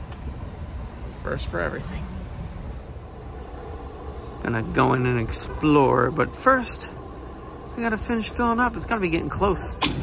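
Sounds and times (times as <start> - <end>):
fuel pump rumble and hiss: 0.0 - 10.0.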